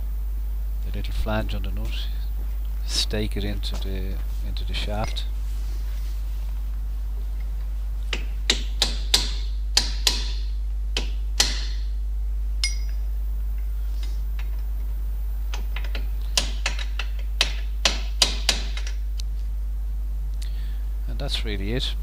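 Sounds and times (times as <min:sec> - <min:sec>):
hammer tapping metal punch: 0:08.1 - 0:11.9, 0:12.6 - 0:13.0, 0:15.5 - 0:19.0.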